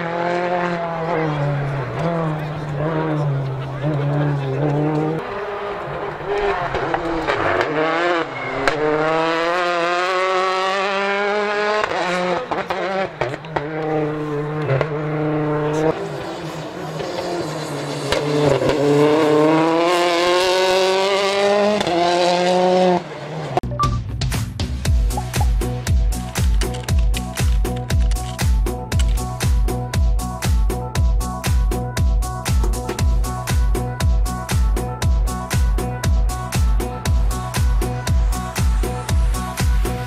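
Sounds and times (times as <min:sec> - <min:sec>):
rally car engine revving: 0:00.0 - 0:23.6.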